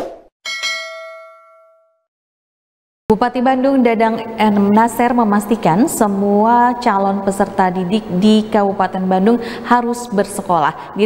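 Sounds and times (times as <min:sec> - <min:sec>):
bright bell ding: 0:00.5 - 0:02.1.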